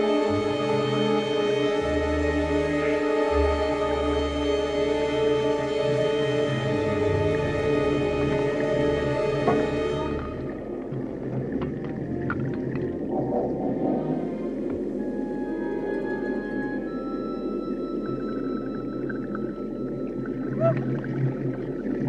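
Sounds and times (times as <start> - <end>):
long high held notes: 0.0 - 10.9
orchestral music: 0.0 - 18.1
water churning and scuba bubbles: 0.0 - 22.0.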